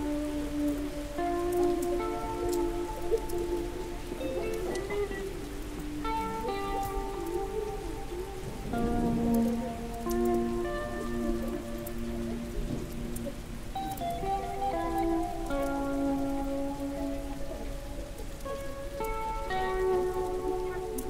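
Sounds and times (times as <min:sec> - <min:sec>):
slow ambient music: 0:00.0 - 0:21.0
steady rain: 0:00.0 - 0:21.0.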